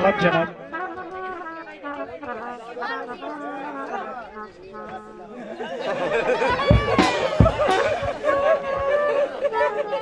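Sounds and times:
low chatter of voices: 0.0s - 10.0s.

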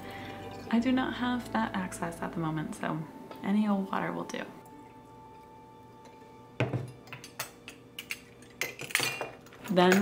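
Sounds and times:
faint background music: 0.0s - 10.0s
glass bottles clinking on table: 6.6s - 10.0s.

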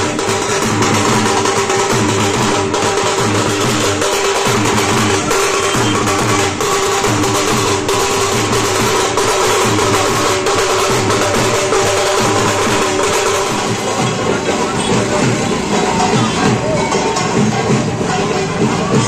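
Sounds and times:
dhol drums: 0.0s - 19.0s.

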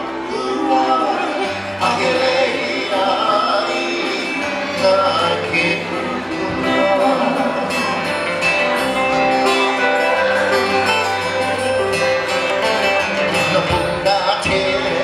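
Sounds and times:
acoustic guitars: 0.0s - 15.0s
lap steel guitar sliding melody: 0.0s - 15.0s.

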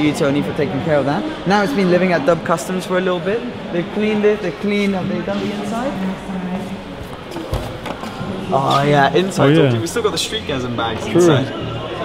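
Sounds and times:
faint voices: 0.0s - 12.0s.

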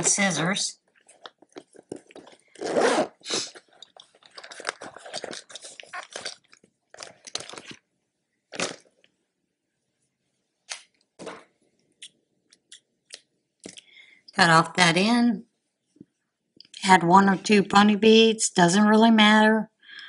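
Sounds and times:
handling rustles and clicks: 3.6s - 7.8s.

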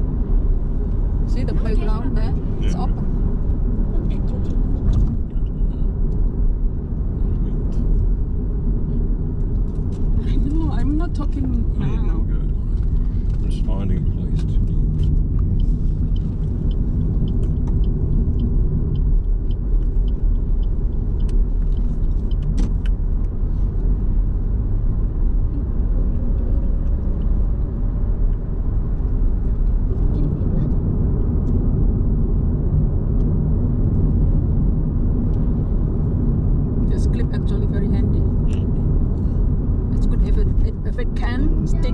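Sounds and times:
car road and engine rumble: 0.0s - 41.9s
faint ticks: 15.0s - 23.4s.

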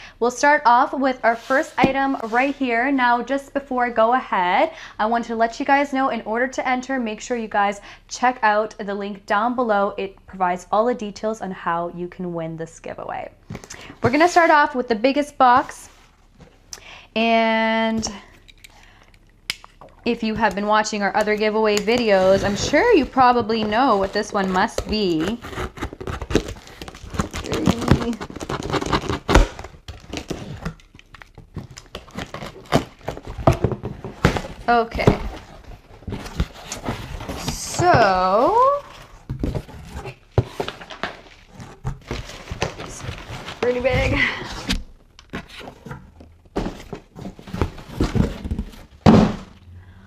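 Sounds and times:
cardboard boxes knocking and scraping: 1.5s - 2.5s, 21.2s - 30.4s, 32.0s - 49.6s
box thudding on table: 47.6s - 49.5s.

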